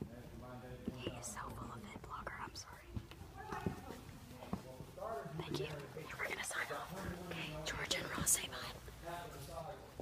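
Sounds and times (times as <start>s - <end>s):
person whispering: 1.0s - 3.0s, 5.4s - 8.8s.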